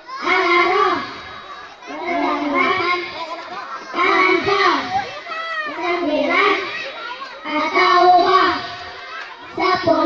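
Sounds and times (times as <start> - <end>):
boys chanting through microphones: 0.0 - 10.0.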